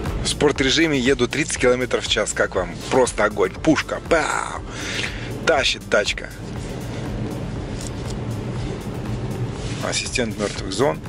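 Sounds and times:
car engine drone from inside: 0.0s - 11.0s.

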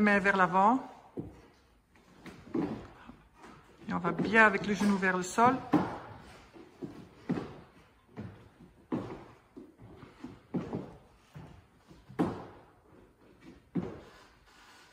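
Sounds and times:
feet thudding on wooden floor: 1.0s - 14.2s.

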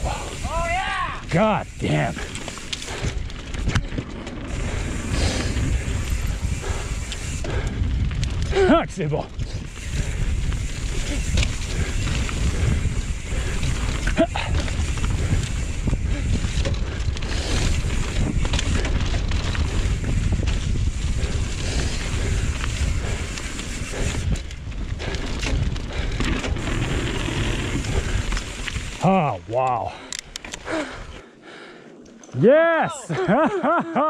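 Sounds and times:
wind rushing over microphone: 0.0s - 29.1s
bike tyres rumbling on dirt: 0.0s - 30.0s
rider's wordless exclamations: 32.4s - 33.2s.

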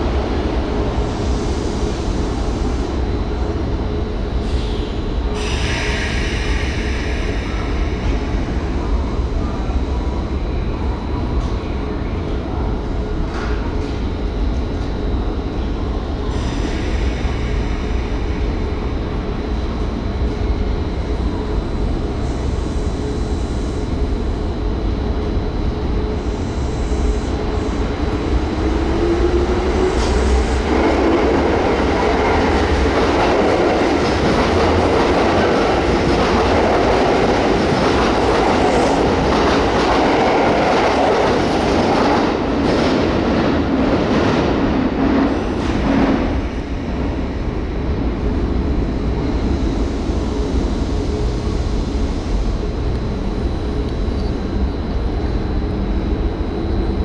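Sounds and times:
train rumble: 0.0s - 57.0s
train running and rail noise: 0.0s - 57.0s.

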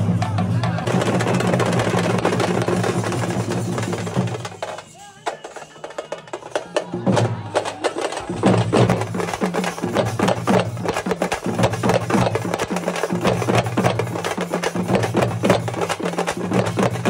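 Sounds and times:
street drum band playing: 0.0s - 17.0s.

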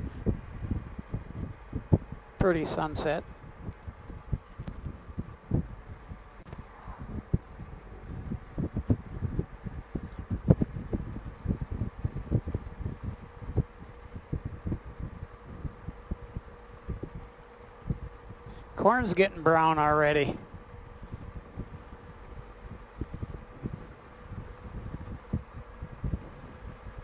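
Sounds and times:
faint steady hum: 0.0s - 27.0s
wind buffeting microphone: 0.0s - 27.0s.

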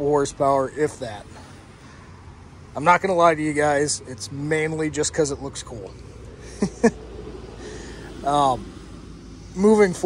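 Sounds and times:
man chuckling with breathy snorts: 6.4s - 7.0s.

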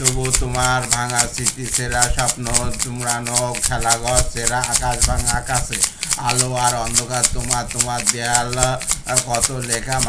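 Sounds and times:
plastic bottle shaker: 0.0s - 10.0s.

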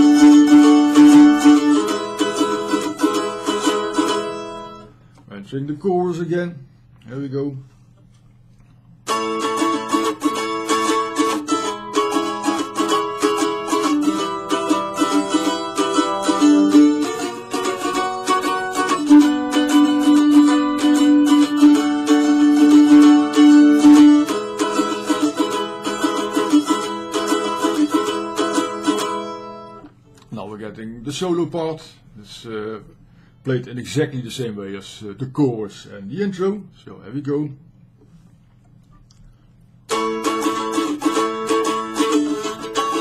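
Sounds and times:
mandolin chords strummed: 0.0s - 4.9s, 9.1s - 30.5s, 39.9s - 43.0s.

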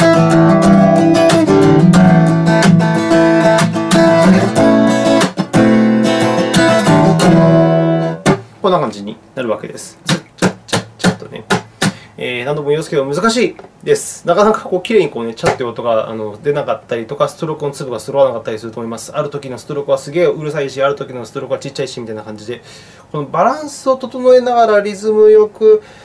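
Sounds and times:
acoustic guitar strumming: 0.0s - 8.6s, 10.0s - 12.1s
percussive hand slaps on strings: 8.2s - 8.5s, 10.0s - 12.0s.

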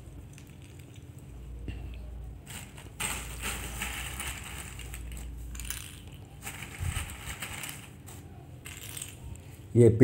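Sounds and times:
plastic beads clicking: 3.0s - 8.0s, 8.6s - 9.5s.

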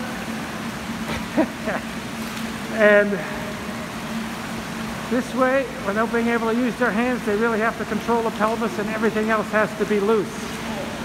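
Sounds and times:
pool water splashing: 0.0s - 11.0s
steady low hum: 0.0s - 11.0s
person laughing: 1.1s - 1.9s.

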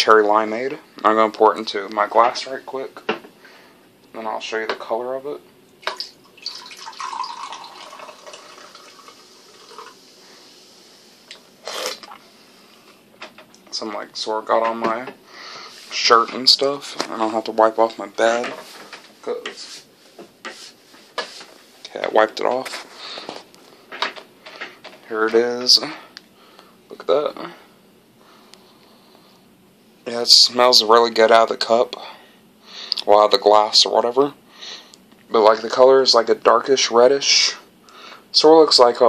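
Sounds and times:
fizzy drink pouring into glass: 5.9s - 10.0s.

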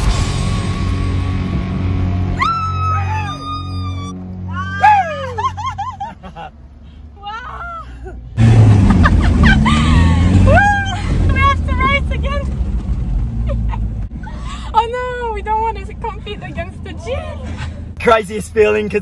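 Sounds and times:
low vehicle rumble: 0.0s - 19.0s
people laughing and whooping: 2.4s - 6.5s, 8.8s - 11.2s.

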